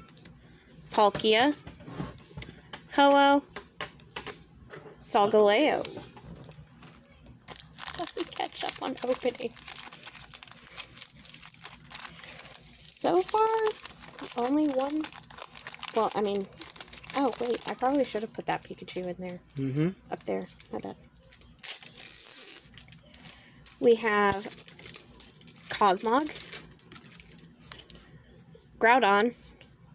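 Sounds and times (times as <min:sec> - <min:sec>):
woman speaking: 0:01.0 - 0:01.6, 0:02.9 - 0:03.4, 0:05.0 - 0:06.0, 0:07.9 - 0:09.5, 0:12.7 - 0:15.1, 0:15.9 - 0:19.4, 0:20.1 - 0:21.0, 0:23.8 - 0:24.6, 0:25.7 - 0:26.4, 0:28.8 - 0:29.4
foil wrapper crinkling: 0:05.7 - 0:19.5, 0:20.1 - 0:28.0
trading cards rustling: 0:07.5 - 0:18.3, 0:20.3 - 0:28.0.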